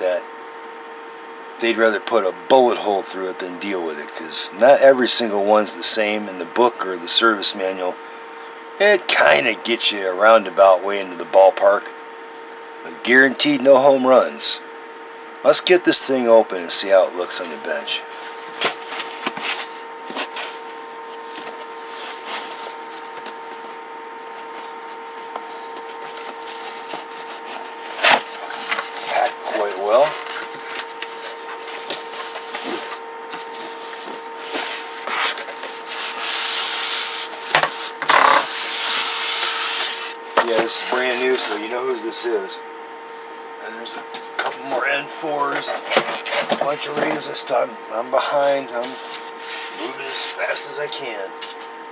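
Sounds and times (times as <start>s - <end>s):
steady low hum: 0.0s - 51.9s
styrofoam rubbing and scraping: 18.7s - 41.6s, 48.8s - 50.5s.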